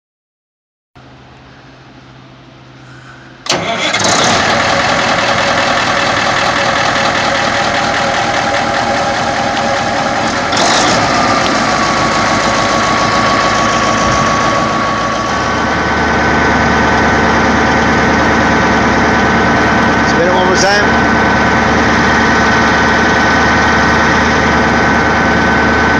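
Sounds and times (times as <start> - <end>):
diesel engine starting and running: 1.0 - 25.9.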